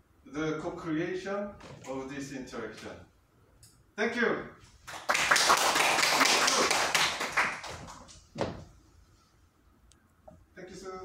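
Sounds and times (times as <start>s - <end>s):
audience applauding: 4.9s - 8.1s.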